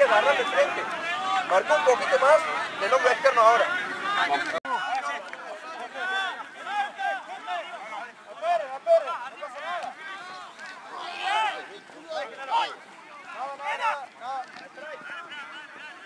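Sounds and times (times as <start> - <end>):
players shouting calls: 0.0 - 16.0.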